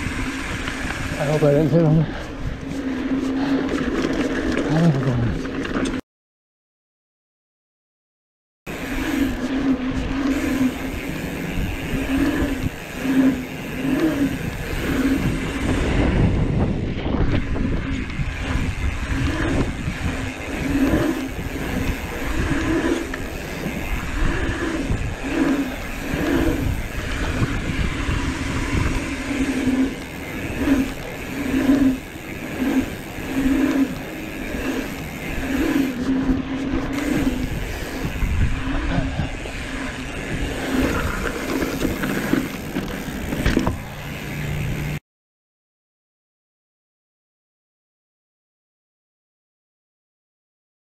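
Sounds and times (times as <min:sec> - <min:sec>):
wind rumble on camera: 0:00.0 - 0:04.1, 0:08.8 - 0:44.6
tyres humming on asphalt: 0:00.0 - 0:06.0, 0:08.7 - 0:45.0.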